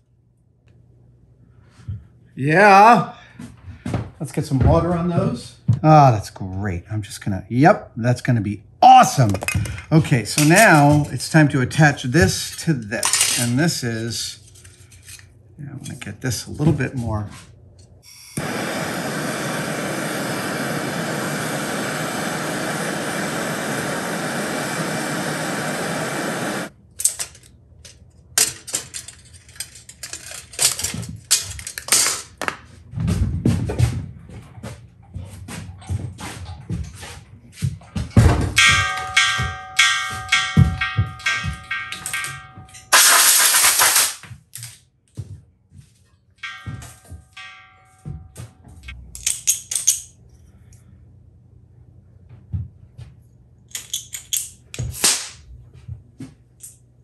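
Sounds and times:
gas torch flame hissing: 18.1s - 26.7s
loud burst of noise: 18.1s - 26.7s, 42.9s - 44.2s
metal taps and clinks: 38.6s - 42.9s, 46.4s - 50.2s.

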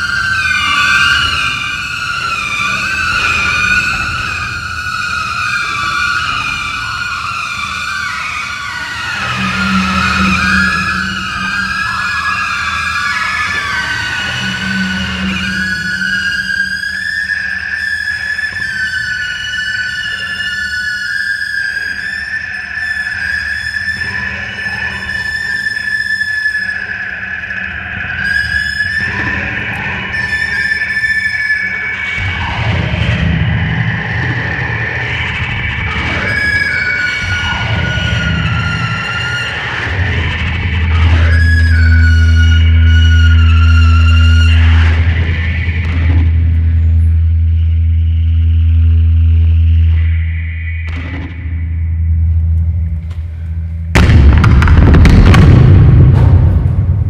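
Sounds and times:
low droning tone: 0.0s - 20.8s, 21.7s - 57.0s
bowed wooden blade sliding tones: 9.1s - 16.8s.

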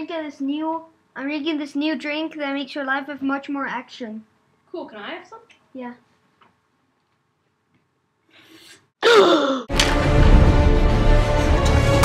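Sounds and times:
faint breath: 8.2s - 8.9s
loud bass-heavy music: 9.8s - 12.0s.

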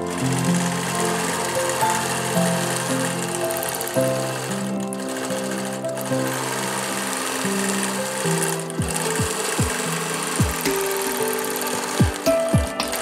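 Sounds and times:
music with sustained notes: 0.0s - 13.0s
quilting machine stitching: 0.0s - 13.0s.

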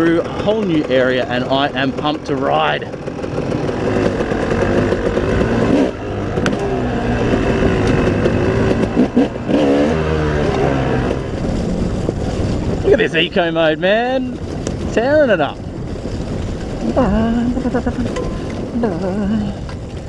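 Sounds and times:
dirt bike engine revving: 0.0s - 13.7s
wind rush: 6.9s - 20.0s.

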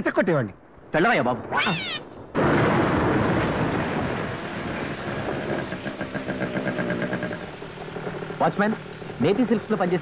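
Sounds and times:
heavy rain hiss: 0.0s - 10.0s
motorcycle engine running: 4.4s - 10.0s.

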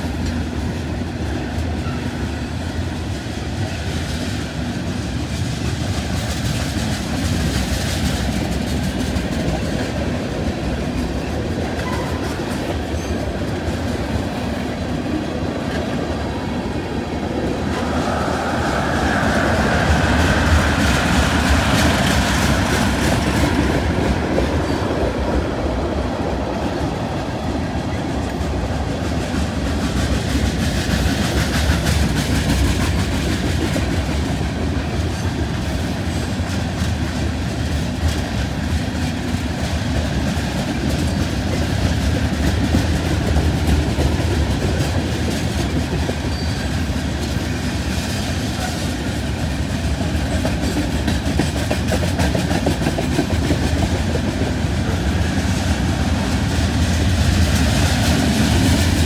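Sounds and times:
freight train rolling on rails: 0.0s - 59.0s.

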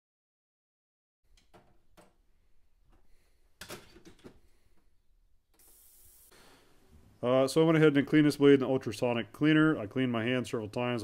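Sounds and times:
faint clicks and knocks: 1.3s - 2.2s
short hiss: 5.6s - 6.8s.

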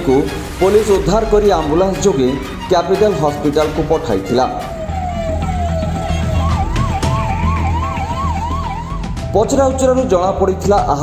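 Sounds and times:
emergency siren wailing: 3.6s - 9.5s.

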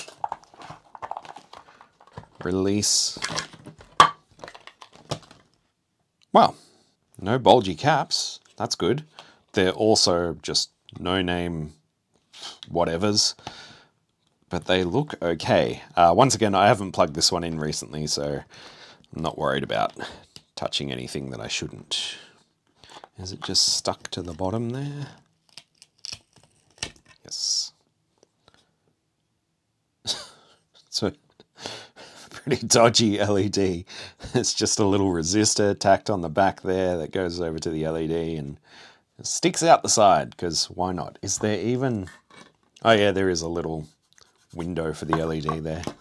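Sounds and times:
plastic case snapping open: 3.2s - 5.5s.

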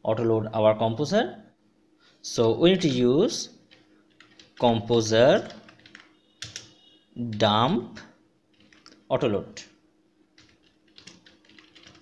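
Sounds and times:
computer keyboard keystrokes: 3.7s - 4.6s, 5.4s - 6.7s, 8.5s - 9.0s, 10.4s - 12.0s.

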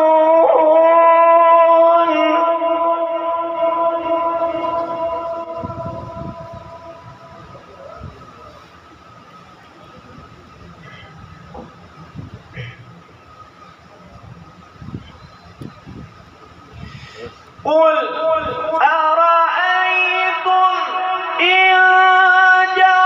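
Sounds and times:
sung note echoing over loudspeaker: 0.0s - 8.1s, 17.6s - 23.0s
low rumble of open microphone: 1.3s - 19.1s
faint steady tone: 2.5s - 17.6s.

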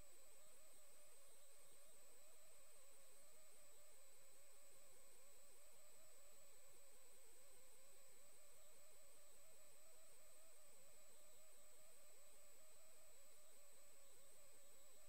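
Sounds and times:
faint low hum: 0.0s - 15.0s
faint steady hiss: 0.0s - 15.0s.

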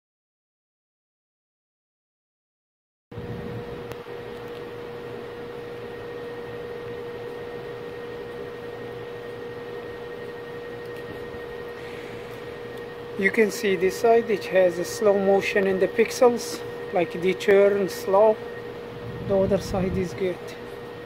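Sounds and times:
steady mid-pitched hum: 3.1s - 21.0s.

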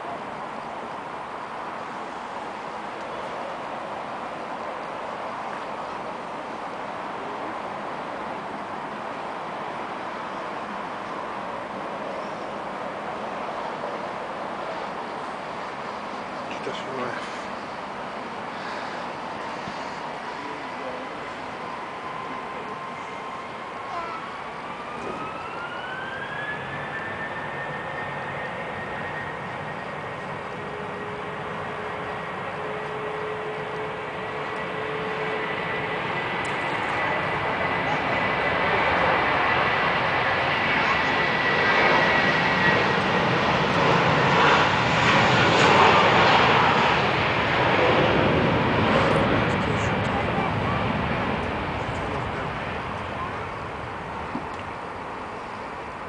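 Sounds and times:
jet engine whine: 0.0s - 56.0s
jet takeoff roar: 0.0s - 56.0s.

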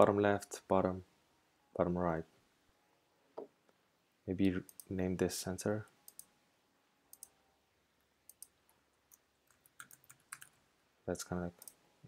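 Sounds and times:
keyboard typing: 8.3s - 10.6s.

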